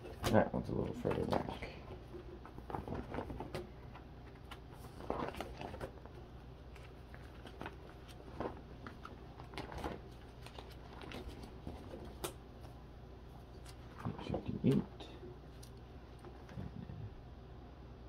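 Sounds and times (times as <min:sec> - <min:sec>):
plastic sleeve pages rustling: 0:00.1 - 0:12.8, 0:13.4 - 0:14.9.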